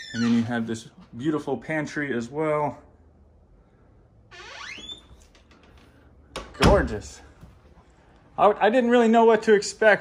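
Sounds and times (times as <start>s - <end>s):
door hinges squeaking: 0.0s - 0.7s, 4.3s - 5.7s.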